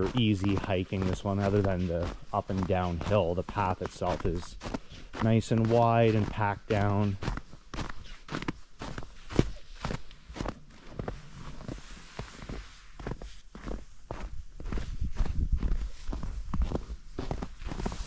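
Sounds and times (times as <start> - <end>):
footsteps crunching in snow: 0.0 - 18.0.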